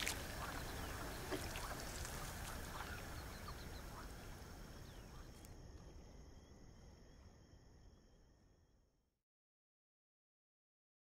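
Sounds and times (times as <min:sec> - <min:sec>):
waterbird calls: 0:00.0 - 0:05.6
steady hiss and low rumble: 0:00.0 - 0:08.9.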